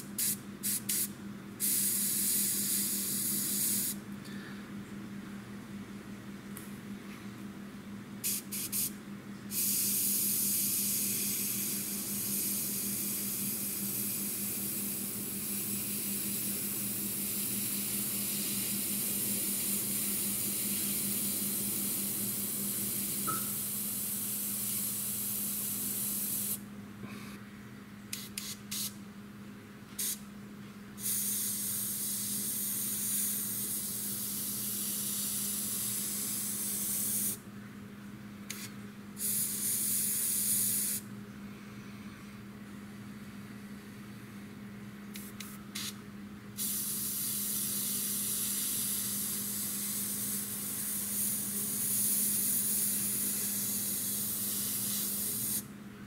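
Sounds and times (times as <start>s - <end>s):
airbrush spraying paint: 0.0s - 4.0s, 8.2s - 8.9s, 9.5s - 26.6s, 28.2s - 28.9s, 30.0s - 30.2s, 31.0s - 37.4s, 38.5s - 41.0s, 45.2s - 46.0s, 46.6s - 55.7s
steady low hum: 0.0s - 56.0s.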